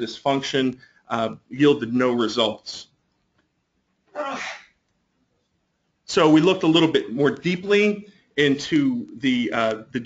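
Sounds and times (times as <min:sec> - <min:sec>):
person breathy burst: 0:04.2 - 0:04.8.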